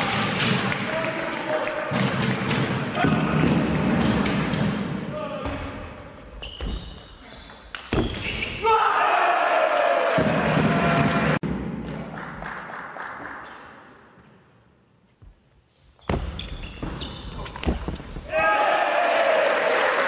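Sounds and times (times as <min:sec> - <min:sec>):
shoes squeaking on floor: 0:06.0 - 0:08.6, 0:15.7 - 0:18.3
loud shout falling in pitch: 0:18.3 - 0:20.0.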